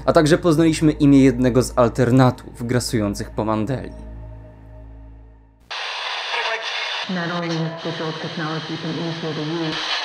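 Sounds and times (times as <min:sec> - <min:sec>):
radio static hiss: 0:05.7 - 0:10.0.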